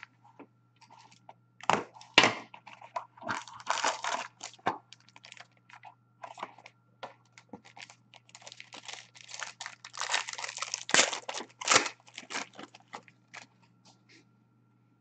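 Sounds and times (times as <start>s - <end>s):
foil wrapper crinkling and tearing: 1.9s - 13.5s.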